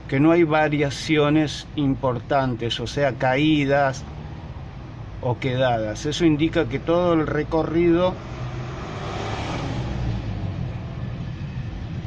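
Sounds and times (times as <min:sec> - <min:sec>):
low traffic hum: 0:00.0 - 0:12.0
vehicle passing: 0:03.8 - 0:05.2, 0:06.0 - 0:12.0.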